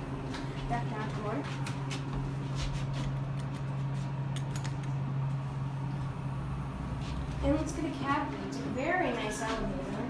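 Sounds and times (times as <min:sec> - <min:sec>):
elevator drive hum: 0:00.0 - 0:10.0.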